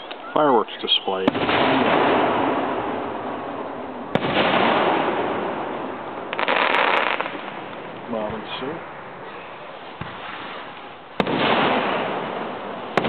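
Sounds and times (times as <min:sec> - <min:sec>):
fireworks exploding with rumble: 0:00.8 - 0:08.8, 0:09.8 - 0:13.0.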